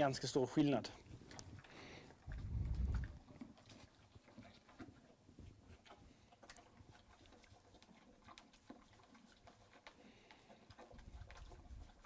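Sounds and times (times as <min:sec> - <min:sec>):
horse eating clicks and rustles: 0:00.0 - 0:12.0.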